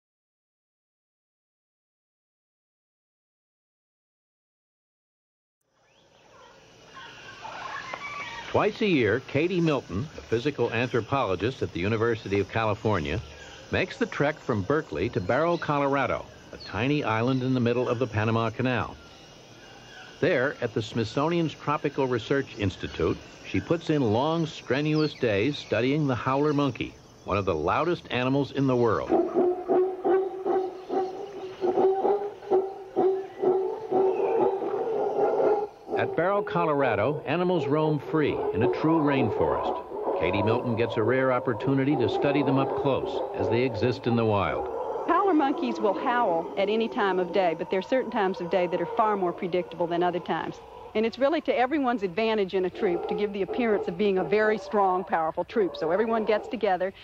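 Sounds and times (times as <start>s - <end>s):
howler monkeys howling: 6.2s - 57.0s
wild animal calls: 6.3s - 9.0s, 28.6s - 57.0s.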